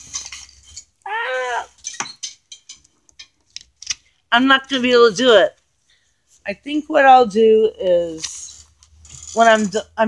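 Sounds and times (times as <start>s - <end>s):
handling clicks and rustles: 0.0s - 1.0s.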